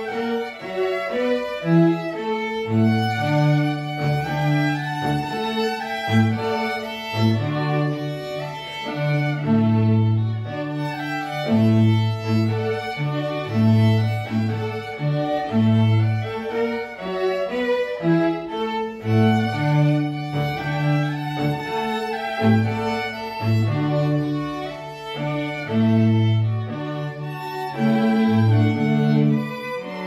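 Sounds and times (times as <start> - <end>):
bowed violin melody: 0.0 - 30.0
cello long low notes: 0.0 - 30.0.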